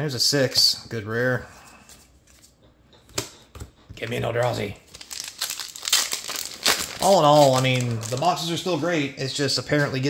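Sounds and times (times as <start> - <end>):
foil wrapper crinkling and tearing: 4.8 - 8.8.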